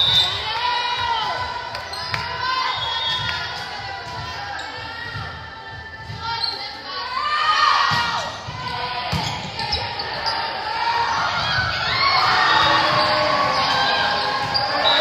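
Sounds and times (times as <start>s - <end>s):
players and spectators calling: 0.0s - 15.0s.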